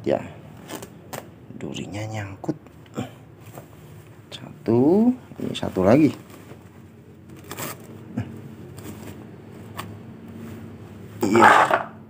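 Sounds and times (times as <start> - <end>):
cloth rustling: 3.4 - 4.3, 5.3 - 11.8.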